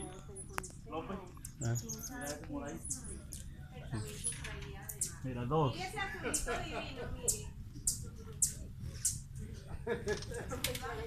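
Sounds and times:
hummingbirds squeaky chips: 1.6 - 5.3, 7.2 - 9.3.

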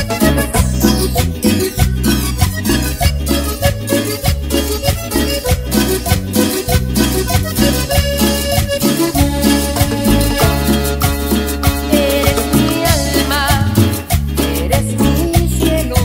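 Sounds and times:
salsa music: 0.0 - 16.0.

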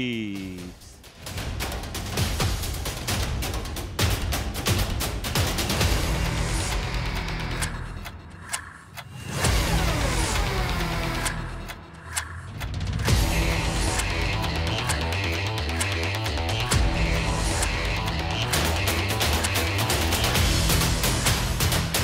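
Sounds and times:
energetic music with heavy beat: 0.0 - 8.6, 9.2 - 22.0.

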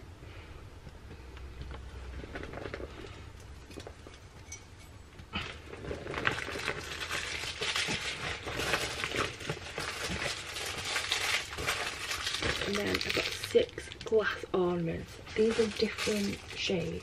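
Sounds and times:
plastic bag crinkling: 5.3 - 17.0.

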